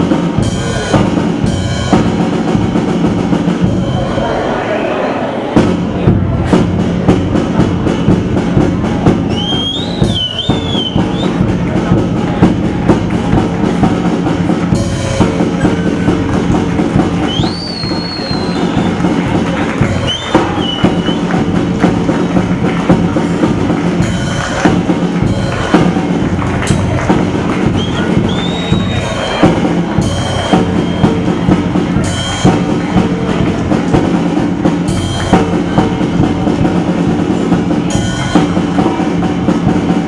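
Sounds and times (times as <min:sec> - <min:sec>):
drum and cymbal hits: 0:00.0 - 0:40.0
pitched backing music: 0:00.0 - 0:40.0.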